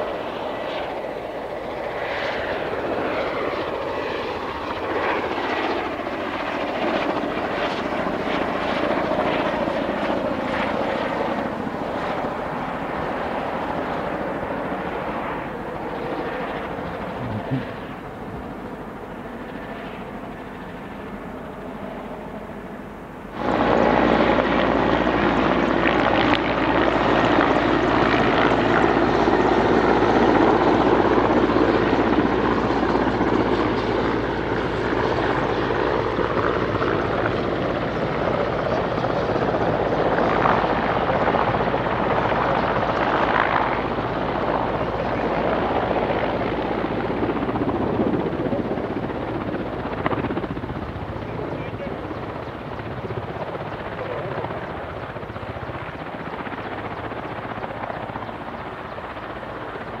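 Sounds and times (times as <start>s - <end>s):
helicopter rotor and turbines: 0.0s - 60.0s.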